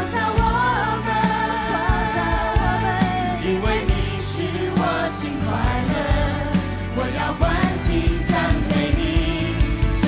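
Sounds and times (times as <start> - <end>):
several singers singing worship song: 0.0 - 10.0.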